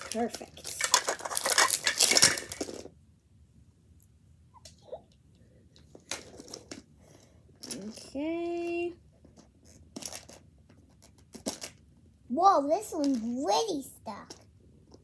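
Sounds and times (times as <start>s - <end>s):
plastic wrapping crinkling: 0.0s - 2.9s.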